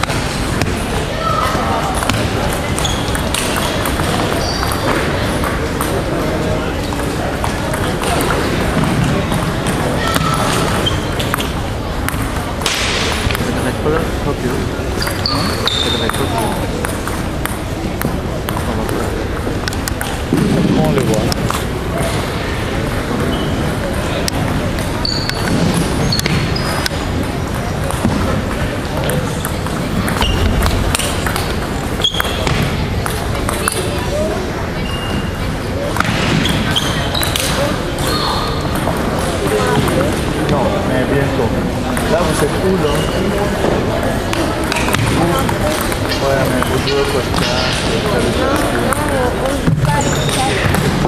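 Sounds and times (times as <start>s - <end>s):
shoes squeaking: 0.0s - 12.5s, 13.1s - 40.4s, 41.9s - 51.0s
table tennis balls clicking: 0.0s - 13.7s, 15.0s - 22.1s, 22.8s - 34.0s, 41.9s - 51.0s
voices echoing in a hall: 0.0s - 51.0s
shoe squeaks: 2.7s - 5.1s, 10.0s - 11.7s, 14.9s - 16.6s, 23.2s - 23.9s, 24.8s - 27.1s, 30.0s - 32.7s, 34.7s - 38.8s, 42.8s - 43.6s, 49.8s - 50.8s
table tennis ball clicking: 11.2s - 12.4s, 16.8s - 19.0s.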